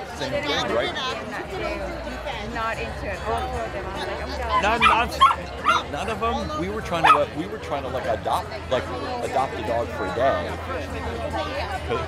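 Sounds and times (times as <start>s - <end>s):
dog yipping and barking: 4.5s - 5.8s, 7.0s - 7.3s.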